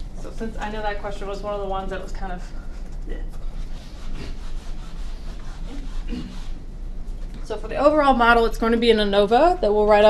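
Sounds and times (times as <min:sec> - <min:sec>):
steady low hum: 0:00.0 - 0:10.0
rubbing scraping noise: 0:03.4 - 0:07.2.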